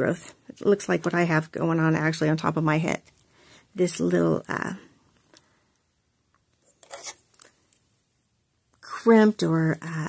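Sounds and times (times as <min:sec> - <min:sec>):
fingers rustling through wig fibres: 0:06.6 - 0:07.9.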